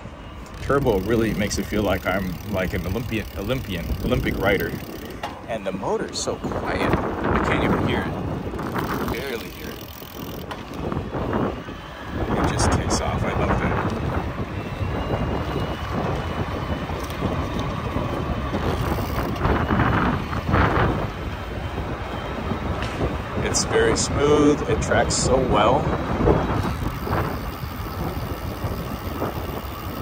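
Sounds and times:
road rumble: 0.0s - 30.0s
wind buffeting microphone: 0.0s - 30.0s.

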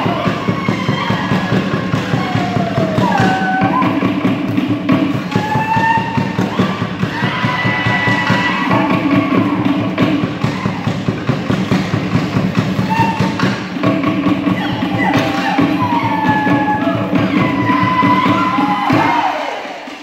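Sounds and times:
fast drumming: 0.0s - 20.0s
voices calling: 12.8s - 19.2s.

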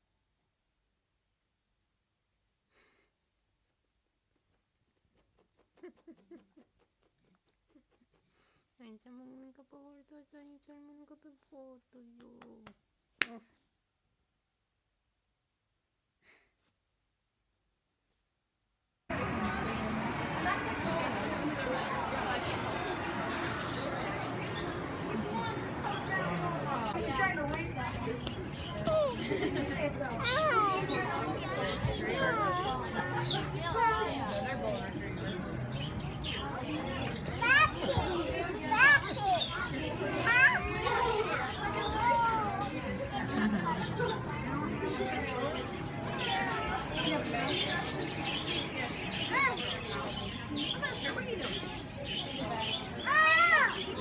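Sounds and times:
background chatter: 4.5s - 13.7s, 19.1s - 54.0s.

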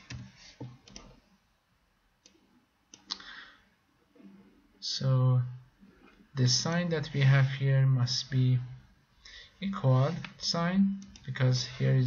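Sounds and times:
computer mouse clicks: 0.0s - 1.2s, 11.0s - 11.4s.

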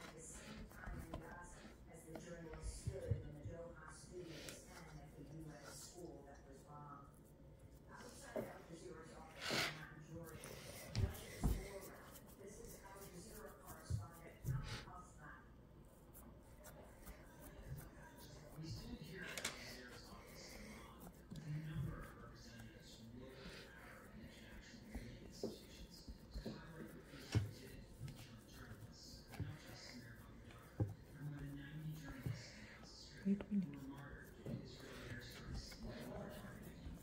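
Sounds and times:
faint murmuring voices: 16.1s - 37.0s.

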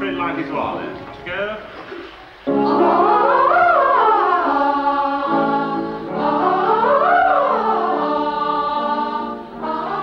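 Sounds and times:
boy choir singing warm-up: 2.5s - 10.0s.

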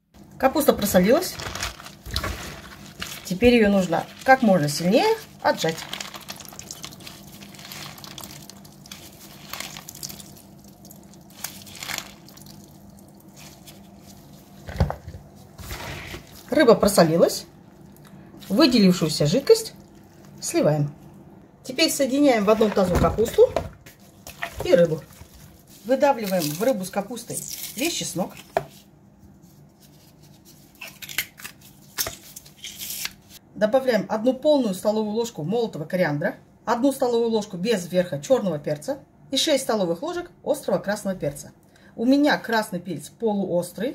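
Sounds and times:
wet squishing of cabbage: 0.2s - 21.3s, 22.4s - 33.4s
plastic glove crinkles: 0.6s - 20.8s, 22.4s - 33.4s.

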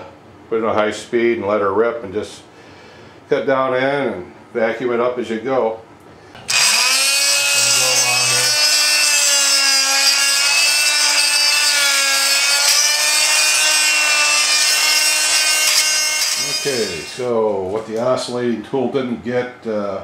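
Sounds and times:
blade scraping mortar: 6.5s - 17.3s
oscillating multi-tool buzzing: 6.5s - 17.3s.

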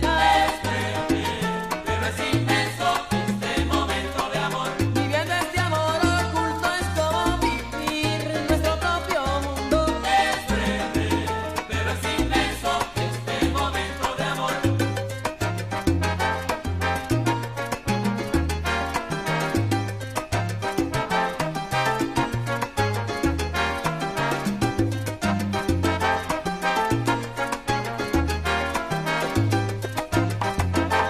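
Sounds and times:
bass line: 0.0s - 31.0s
salsa band music: 0.0s - 31.0s.

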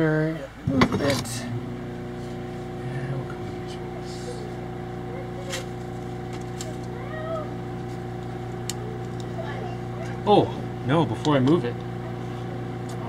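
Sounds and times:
steady mechanical hum: 0.0s - 13.0s.

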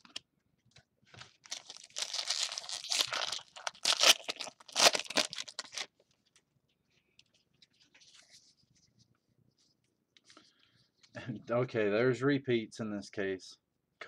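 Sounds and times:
foil wrapper tearing and crinkling: 1.4s - 5.9s.

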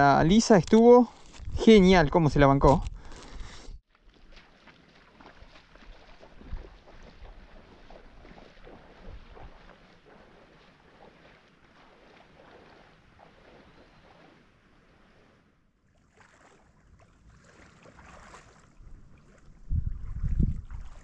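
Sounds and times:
small waves lapping: 3.9s - 21.0s
wind buffeting microphone: 18.8s - 21.0s.

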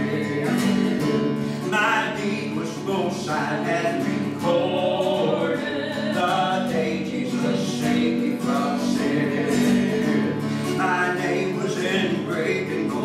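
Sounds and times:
strummed acoustic guitar: 0.0s - 13.0s
woman and man singing: 0.0s - 13.0s.

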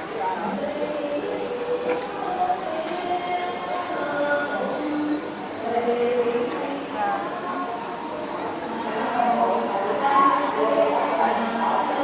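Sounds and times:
large crowd talking: 0.0s - 12.0s.

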